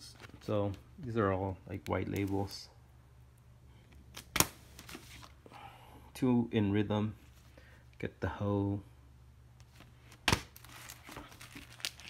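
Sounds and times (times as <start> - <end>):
record sleeves rustling: 0.0 - 2.6, 3.9 - 5.4, 9.6 - 12.0.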